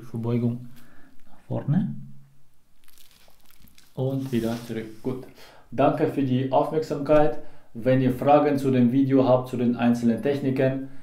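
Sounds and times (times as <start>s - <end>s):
clothing rustling: 2.8s - 5.2s.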